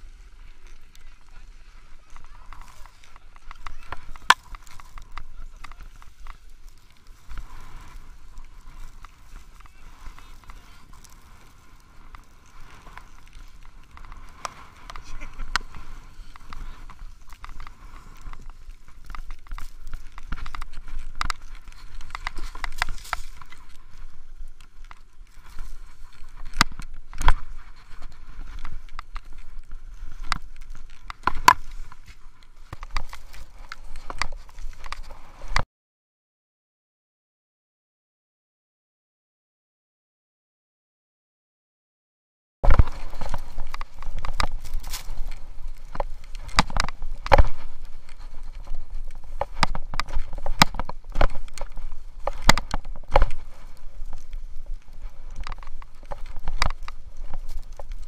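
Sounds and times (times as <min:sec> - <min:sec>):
skiers' voices: 0:00.0 - 0:35.6, 0:42.7 - 0:58.0
wind rumble on microphone: 0:00.0 - 0:35.6, 0:42.6 - 0:58.0
ski gear clattering on snow: 0:00.5 - 0:35.6, 0:42.6 - 0:58.0.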